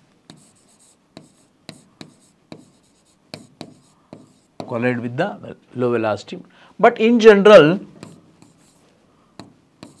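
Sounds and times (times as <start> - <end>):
chalk tapping on blackboard: 0.3 - 4.8, 8.0 - 8.8, 9.4 - 10.0.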